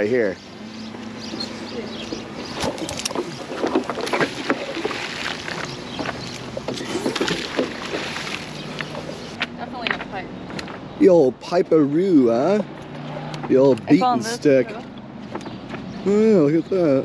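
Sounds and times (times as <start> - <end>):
low motor hum: 0.0 - 17.0
knocks and clatters: 2.1 - 10.9.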